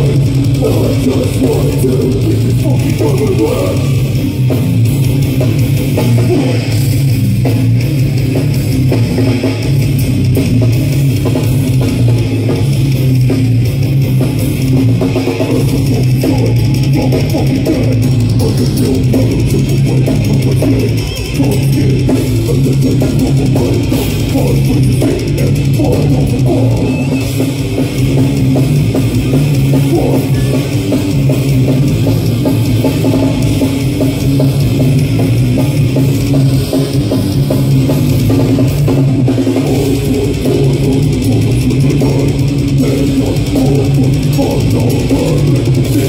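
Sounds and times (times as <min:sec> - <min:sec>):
heavy distorted guitars: 0:00.0 - 0:46.0
pounding drum kit: 0:00.0 - 0:46.0.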